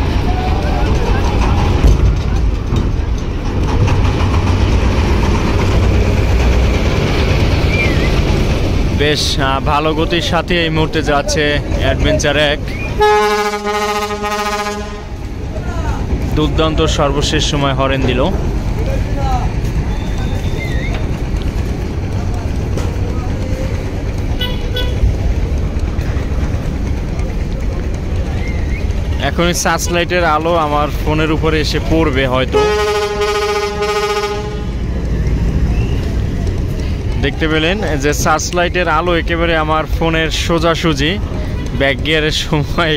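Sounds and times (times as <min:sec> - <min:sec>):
low steady rumble: 0:00.0 - 0:42.9
boat horn blast: 0:13.0 - 0:15.2, 0:24.4 - 0:25.0, 0:32.5 - 0:34.8.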